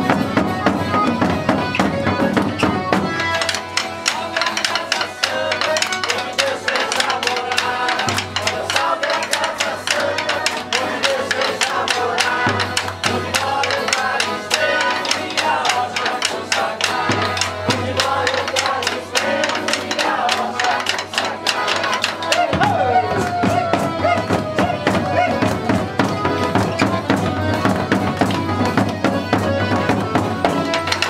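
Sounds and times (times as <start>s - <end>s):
accordion: 0.0s - 31.0s
hand drums: 0.0s - 31.0s
violas: 0.0s - 31.0s.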